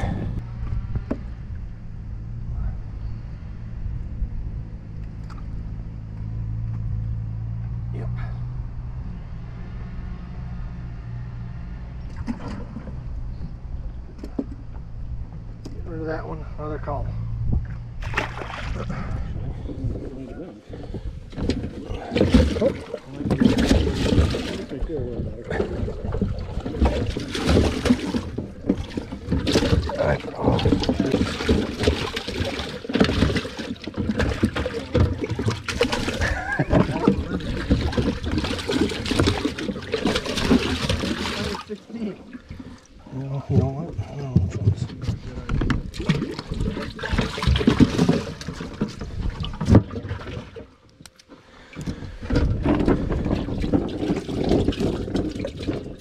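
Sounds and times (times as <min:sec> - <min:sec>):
water spraying and splashing: 0:26.1 - 0:42.8.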